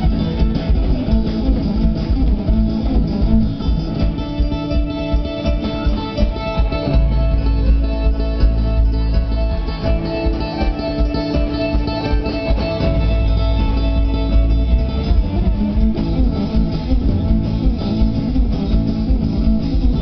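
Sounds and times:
live instrumental band music: 0:00.0 - 0:20.0.

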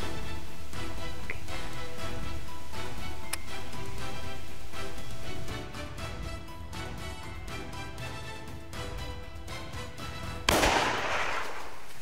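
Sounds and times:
music: 0:00.0 - 0:11.6
rifle shot with echo: 0:10.5 - 0:12.0.

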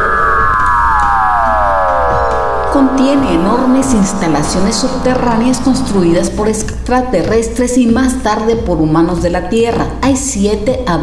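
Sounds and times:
synthesized siren-like tone gliding down: 0:00.3 - 0:06.8.

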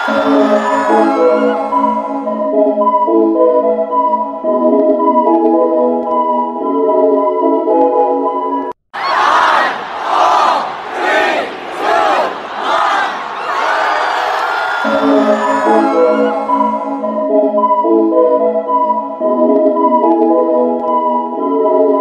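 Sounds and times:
keyboard music melody: 0:00.0 - 0:08.8, 0:14.8 - 0:22.0.

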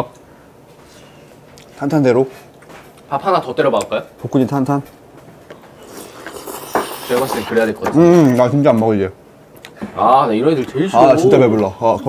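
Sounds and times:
noisy hiss: 0:00.0 - 0:12.0
person chewing food: 0:05.5 - 0:07.4.

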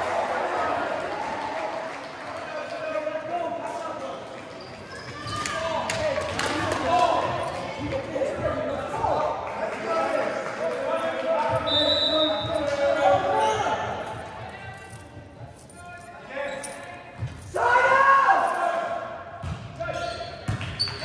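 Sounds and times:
players shouting in gymnasium: 0:04.6 - 0:10.4, 0:11.4 - 0:14.3, 0:17.4 - 0:21.0.

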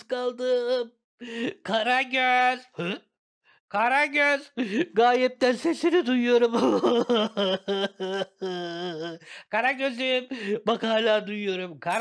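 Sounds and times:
man doing puppet voice: 0:00.0 - 0:03.1, 0:03.8 - 0:12.0.

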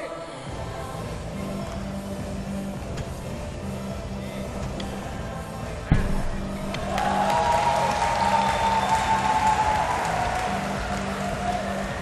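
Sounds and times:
background music: 0:00.0 - 0:12.0
applause and cheering: 0:06.7 - 0:12.0.

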